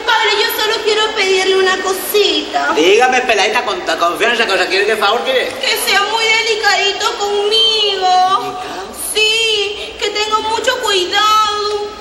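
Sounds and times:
woman's sing-song voice: 5.6 - 12.0.

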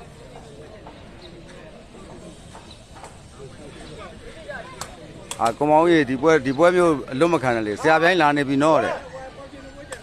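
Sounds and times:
spectators murmuring and chatting: 0.0 - 10.0.

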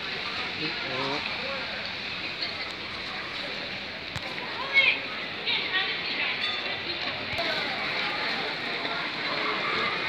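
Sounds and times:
chatter of passers-by: 0.0 - 10.0.

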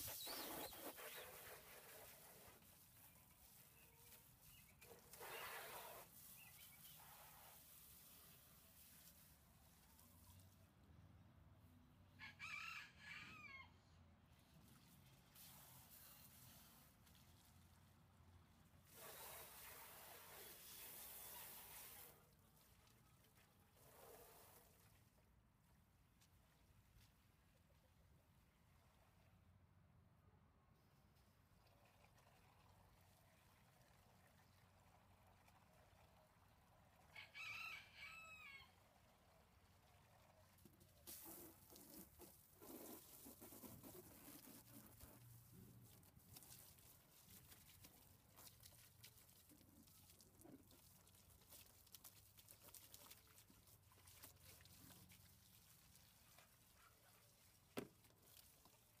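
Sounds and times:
hose water splashing into container: 0.0 - 10.4, 14.6 - 25.4, 39.2 - 59.0
faint rooster crowing: 12.2 - 14.0, 37.1 - 38.9.

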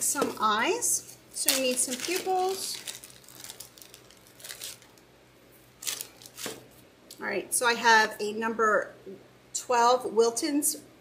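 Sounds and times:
plastic bag crinkling: 0.0 - 5.1, 5.7 - 6.8.

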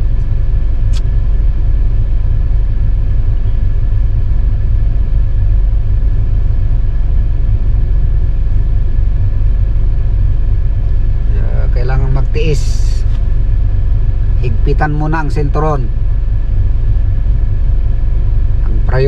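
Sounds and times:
car engine idling: 0.0 - 19.0
faint steady whine: 0.0 - 19.0
short click: 0.9 - 1.1.

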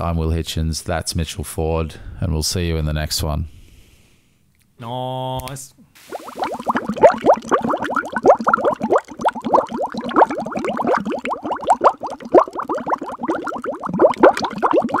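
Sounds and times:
liquid bubbling: 6.0 - 15.0.

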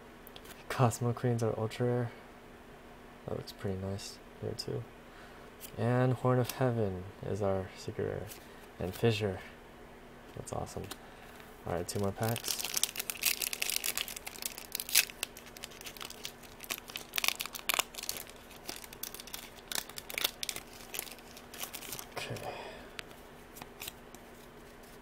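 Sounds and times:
foil wrapper tearing and crinkling: 11.9 - 22.4, 23.5 - 24.0.

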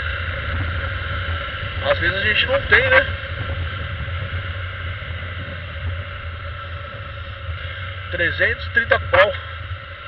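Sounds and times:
motorcycle engine running: 0.0 - 10.0
wind buffeting microphone: 0.0 - 10.0.

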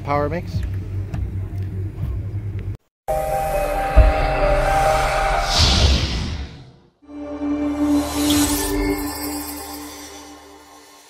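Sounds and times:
held electronic tone: 3.1 - 6.3
rising whoosh: 3.3 - 10.4
sharp boom: 3.6 - 6.8.

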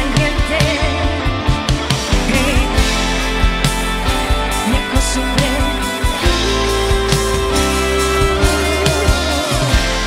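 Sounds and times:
live pop band playing: 0.0 - 10.0.

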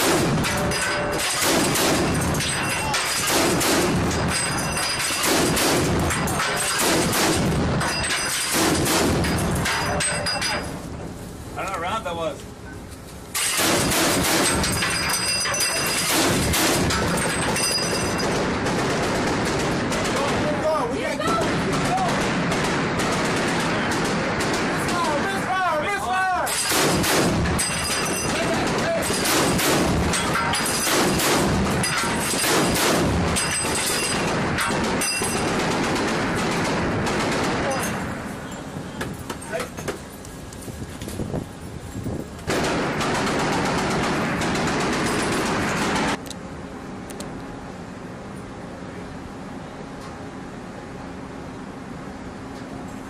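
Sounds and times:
chain gun firing heavy shots: 0.0 - 10.6, 13.4 - 25.4, 26.4 - 38.2, 42.4 - 46.2.

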